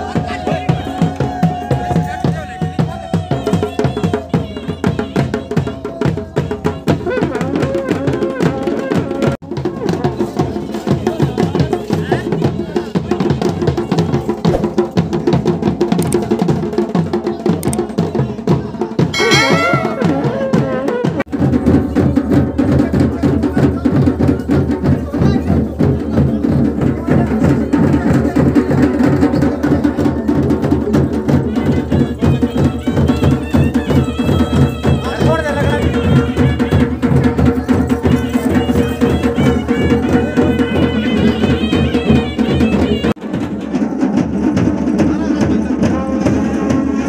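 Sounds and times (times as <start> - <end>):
fast drumming: 0.0 - 46.9
high wavering tone: 19.2 - 20.5.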